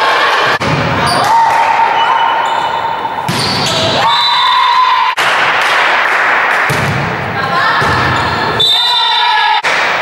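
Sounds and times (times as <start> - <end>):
echoing ball and floor impacts: 2.5 - 4.0, 5.2 - 8.6.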